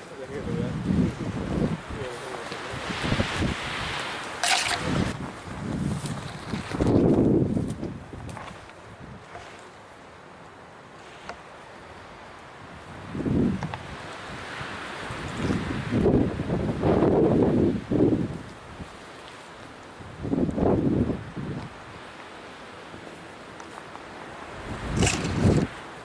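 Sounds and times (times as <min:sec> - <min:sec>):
rustling through scrub: 0:00.0 - 0:16.1, 0:18.2 - 0:26.0
wind buffeting microphone: 0:00.2 - 0:09.6, 0:12.6 - 0:19.0, 0:20.0 - 0:22.0, 0:24.4 - 0:25.9.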